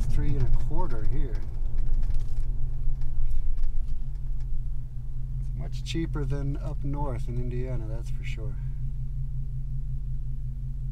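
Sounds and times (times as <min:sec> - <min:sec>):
truck engine low drone: 0:00.0 - 0:10.9.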